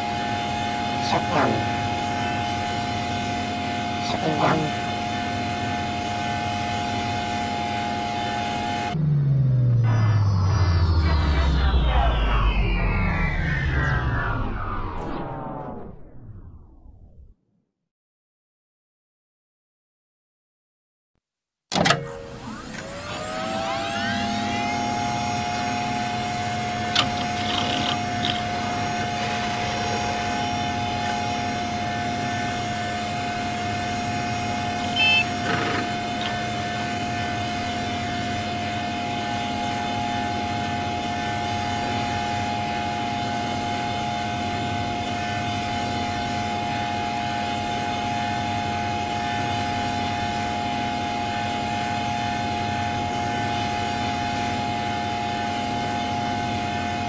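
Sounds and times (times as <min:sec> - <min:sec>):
synthetic drone: 0:00.0 - 0:17.3, 0:22.2 - 0:57.0
short electronic blips: 0:08.0 - 0:16.6, 0:34.6 - 0:36.7.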